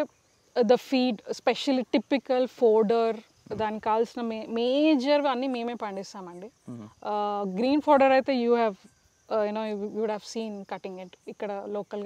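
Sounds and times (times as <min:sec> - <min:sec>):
crickets droning: 0:00.0 - 0:12.0
woman speaking: 0:00.0 - 0:12.0.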